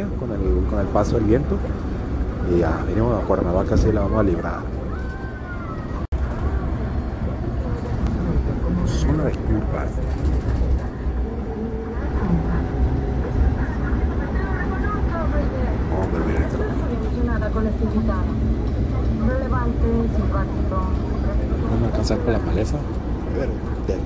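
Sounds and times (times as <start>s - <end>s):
bus engine and road rumble: 0.0s - 24.0s
indistinct voices: 0.7s - 24.0s.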